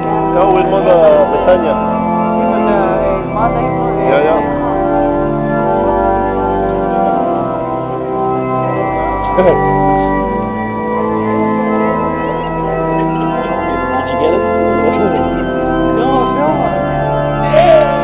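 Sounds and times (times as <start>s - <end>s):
murmur of voices: 0.0s - 10.2s, 11.6s - 18.0s
church organ chords: 0.0s - 18.0s.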